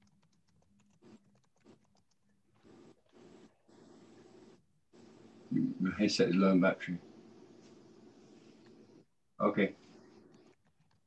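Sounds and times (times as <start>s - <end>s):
soft breathy noise bursts: 6.9s - 10.3s.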